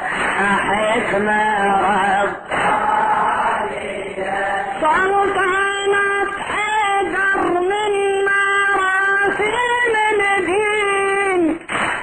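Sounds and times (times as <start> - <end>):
men chanting together: 0.4 - 4.8.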